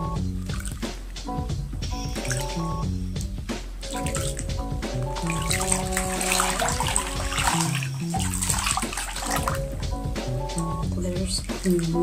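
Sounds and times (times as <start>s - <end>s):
background music: 0.0s - 12.0s
bath water splashing: 0.3s - 1.3s, 2.0s - 12.0s.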